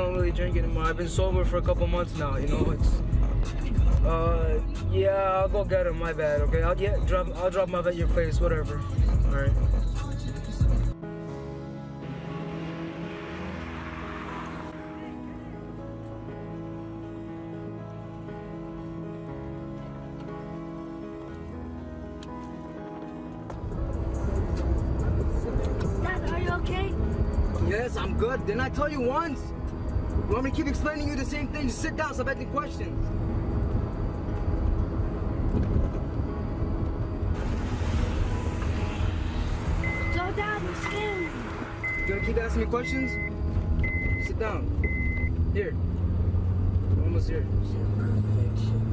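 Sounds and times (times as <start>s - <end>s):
car engine driving: 0.0s - 21.4s, 22.2s - 48.9s.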